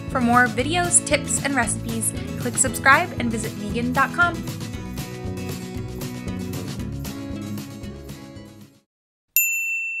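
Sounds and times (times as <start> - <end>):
background music: 0.0 - 8.8
bell-like chime ding: 9.4 - 10.0.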